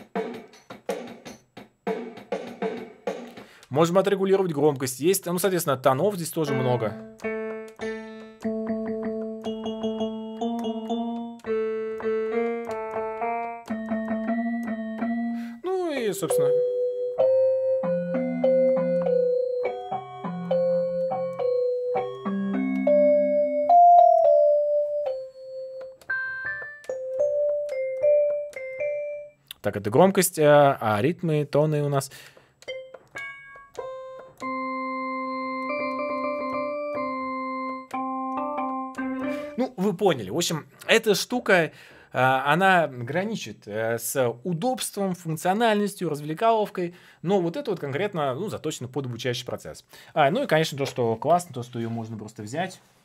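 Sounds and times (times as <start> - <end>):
keyboard drum beat with chord stabs: 0.0 - 4.0, 6.4 - 16.7
synthesizer melody: 6.1 - 29.4, 32.6 - 39.8.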